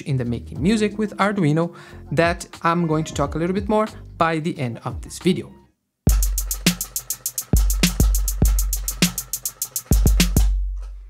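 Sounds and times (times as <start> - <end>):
hi-hat ticks: 6.1 - 10.9
snare hits: 6.1 - 10.9.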